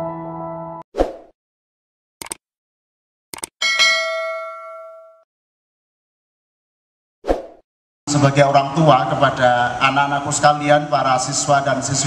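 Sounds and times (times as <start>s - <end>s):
bell-like notification chime: 3.6s - 5.2s.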